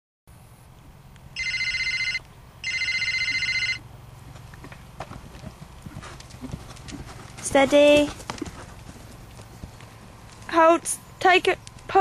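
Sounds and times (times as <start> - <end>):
electric bell ringing: 1.4 - 3.8.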